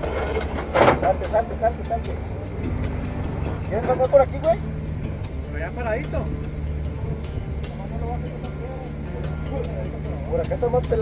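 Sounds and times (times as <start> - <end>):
faint voices: 0.0 - 11.0
vehicle engine idling: 0.0 - 11.0.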